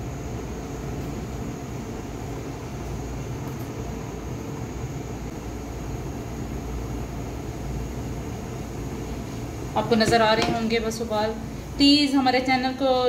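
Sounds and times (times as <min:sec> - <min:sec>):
gas flame rushing drone: 0:00.0 - 0:12.3.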